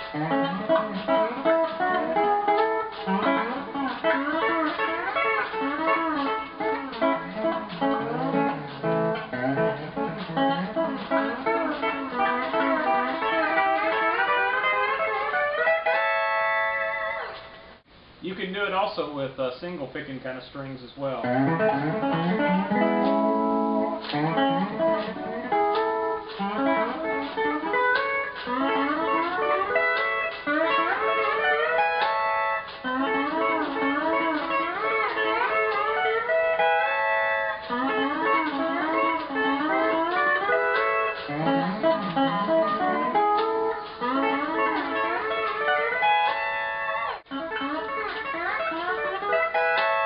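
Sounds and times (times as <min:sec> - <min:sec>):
pedal steel guitar playing: 0:00.0 - 0:17.8, 0:21.2 - 0:50.0.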